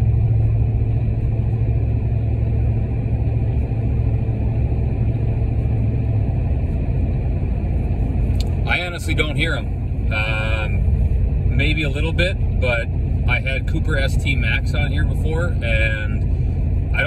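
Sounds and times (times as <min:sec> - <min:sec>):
low exhaust drone: 0:00.0 - 0:17.0
road and tire rumble: 0:00.0 - 0:17.0.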